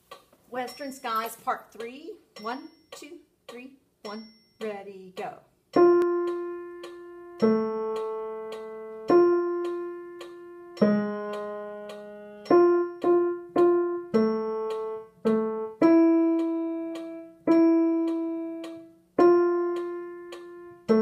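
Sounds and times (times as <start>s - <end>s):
digital piano playing slow tune: 5.8s - 21.0s.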